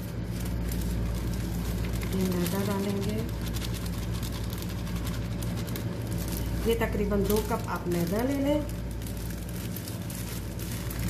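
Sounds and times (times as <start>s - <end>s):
plastic bag crinkling: 0.0s - 11.0s
steady low hum: 0.0s - 11.0s.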